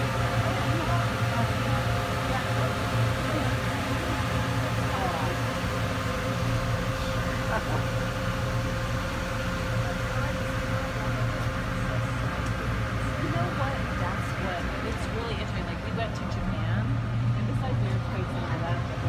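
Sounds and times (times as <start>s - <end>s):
faint voices: 0.0s - 19.0s
ferry engine humming: 0.0s - 19.0s.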